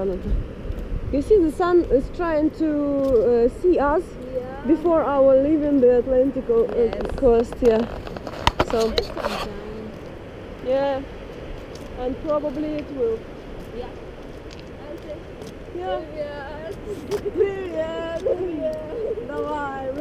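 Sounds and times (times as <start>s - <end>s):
woman talking: 0.0s - 0.3s, 1.1s - 7.9s, 8.6s - 10.0s, 10.6s - 11.1s, 12.0s - 14.0s, 14.8s - 20.0s.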